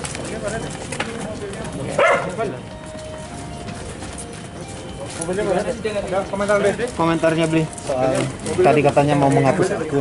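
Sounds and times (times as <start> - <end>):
crowd murmur: 0.0 - 10.0.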